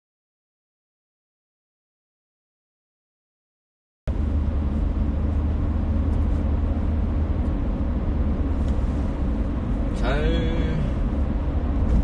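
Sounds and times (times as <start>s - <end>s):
road and engine rumble in car: 4.1s - 12.0s.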